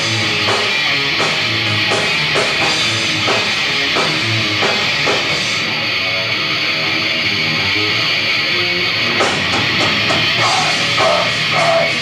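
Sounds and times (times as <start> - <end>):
drum kit: 0.0 - 6.0, 8.8 - 12.0
distorted electric guitars: 0.0 - 12.0.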